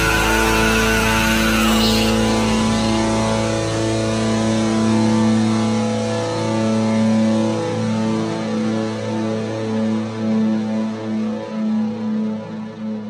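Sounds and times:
distorted electric guitar chords: 0.0s - 13.0s
steady low drone: 0.0s - 13.0s.

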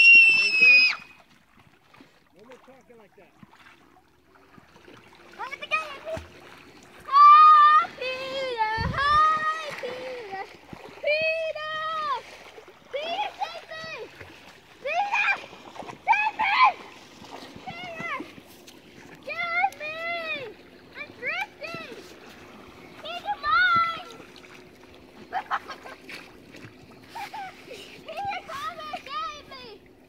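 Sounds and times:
feet splashing in shallow water: 0.0s - 30.0s.

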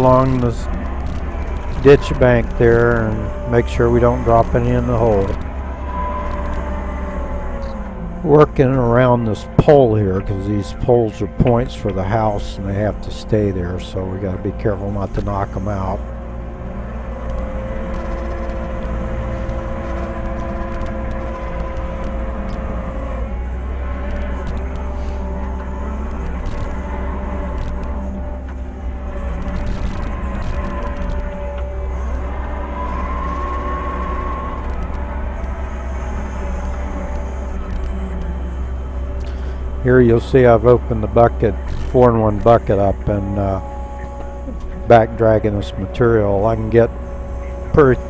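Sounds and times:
hydraulics whining: 0.0s - 48.0s
loader engine running: 0.0s - 48.0s.

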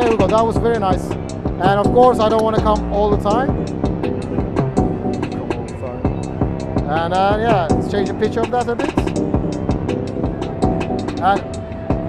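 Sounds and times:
electronic drum pattern: 0.0s - 12.0s
sustained synth bass: 0.0s - 12.0s.

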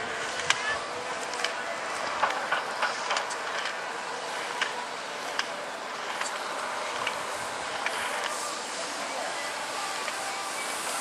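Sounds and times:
skis scraping hard snow: 6.0s - 11.0s.

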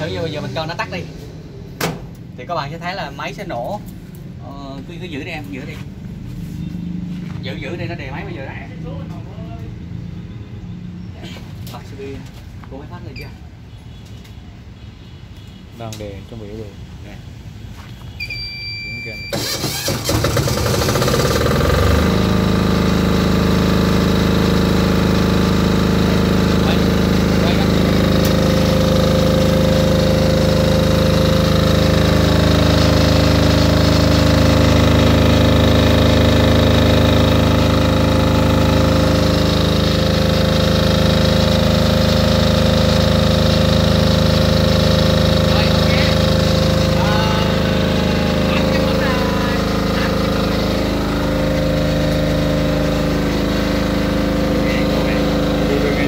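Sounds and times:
short electronic beep: 18.1s - 19.4s
generator cranking and running: 19.3s - 56.0s.

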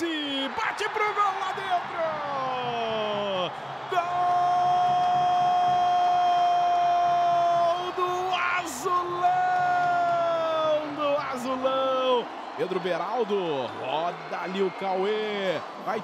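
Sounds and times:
crowd cheering: 0.0s - 16.0s.

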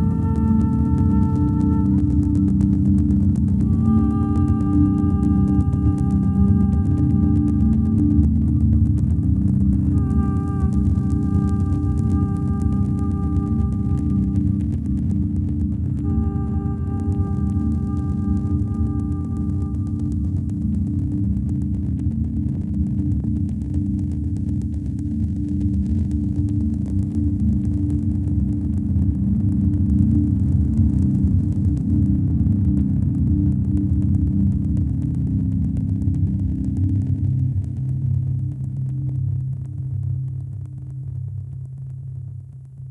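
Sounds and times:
low rumbling electronic drone: 0.0s - 42.9s.

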